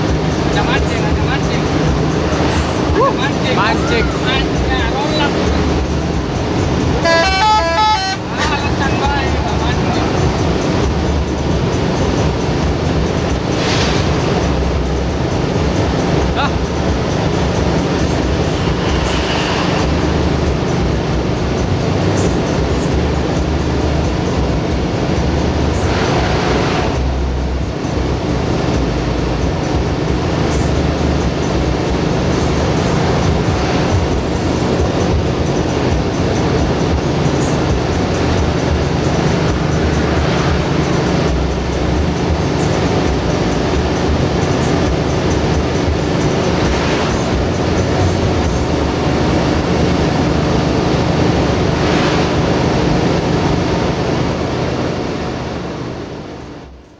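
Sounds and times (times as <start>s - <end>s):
bus engine and road rumble: 0.0s - 56.9s
multi-note horn: 7.0s - 8.8s.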